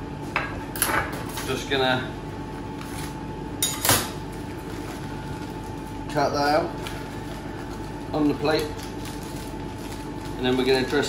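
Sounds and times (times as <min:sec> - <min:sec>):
kitchen ventilation hum: 0:00.0 - 0:11.0.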